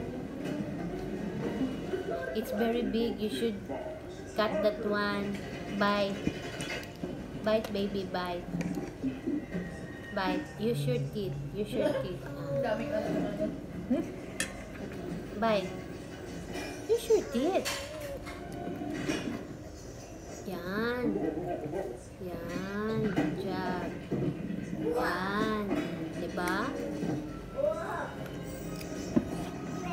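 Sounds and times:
fork clinking against plate: 14.3 - 14.9.

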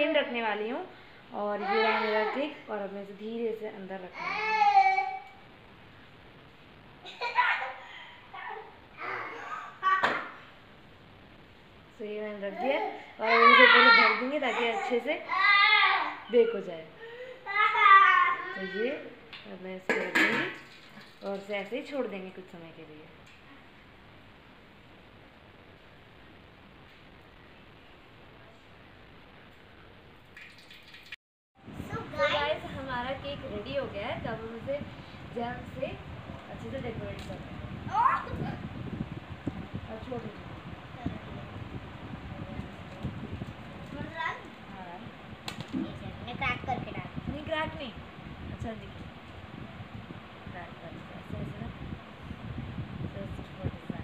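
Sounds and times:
faint room hiss: 0.0 - 54.0
gas stove burner hissing: 31.7 - 54.0.

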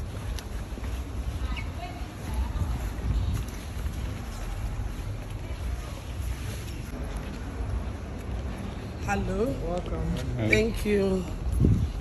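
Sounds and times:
wind buffeting microphone: 0.0 - 6.0, 10.7 - 12.0.

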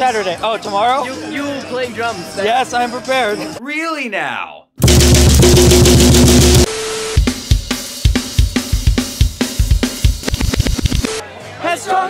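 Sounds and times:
drum kit with cymbals: 4.8 - 11.2.

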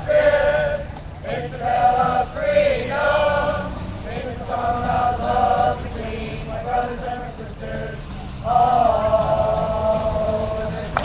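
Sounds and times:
group singing in unison: 0.0 - 11.0.

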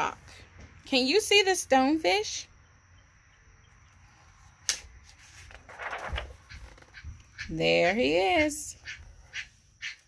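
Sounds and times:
faint background noise: 0.0 - 10.0
plastic page flipping snap: 4.6 - 6.3.

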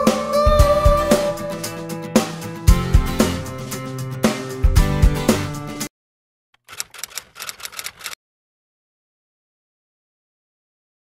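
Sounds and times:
typewriter keys clicking: 6.6 - 8.2.

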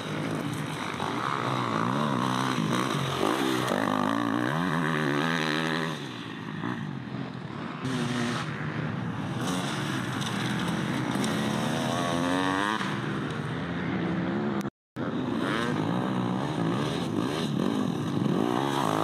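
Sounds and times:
motorcycle engines revving: 0.0 - 19.0.

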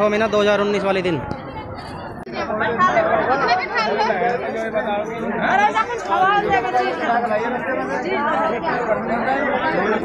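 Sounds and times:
background chatter: 0.0 - 10.0
people talking: 0.0 - 10.0.

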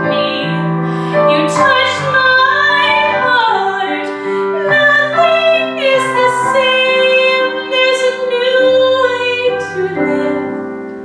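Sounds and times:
woman singing: 0.0 - 10.8
piano accompaniment: 0.0 - 11.0.

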